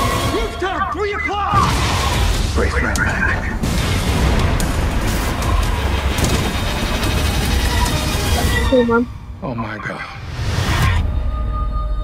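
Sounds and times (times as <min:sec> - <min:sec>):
helicopter crashing: 0:03.3 - 0:08.7.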